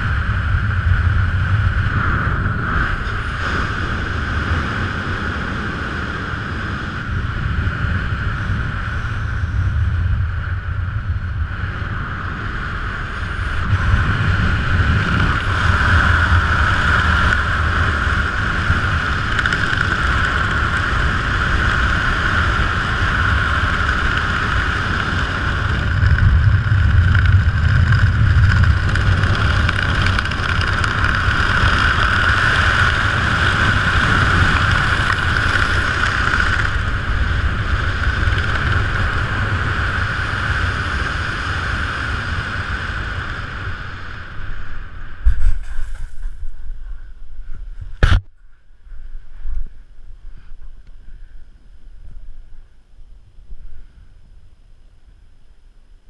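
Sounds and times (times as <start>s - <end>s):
wind rushing over camera: 0.0s - 56.0s.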